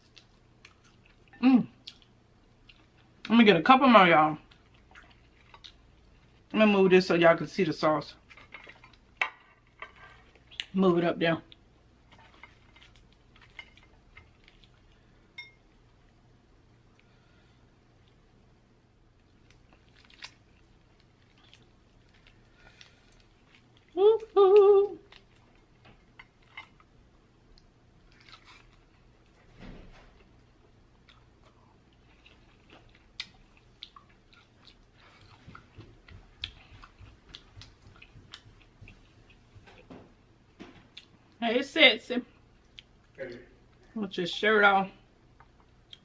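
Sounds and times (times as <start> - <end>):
woman humming: 23.9 - 25.1
crunching and wet eating clicks: 31.0 - 39.5, 45.4 - 46.0.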